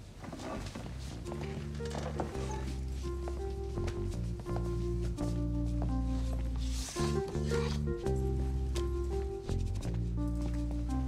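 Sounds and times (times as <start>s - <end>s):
background score music: 0.6s - 11.0s.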